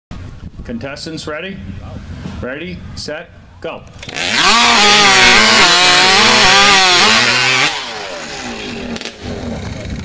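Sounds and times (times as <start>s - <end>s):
chainsaw cutting through log: 4.0s - 10.0s.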